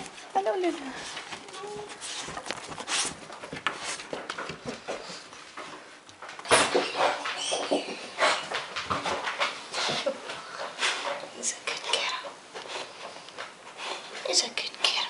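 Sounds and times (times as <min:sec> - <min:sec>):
dogs moving about: 0:00.0 - 0:11.4
person talking: 0:00.3 - 0:02.0.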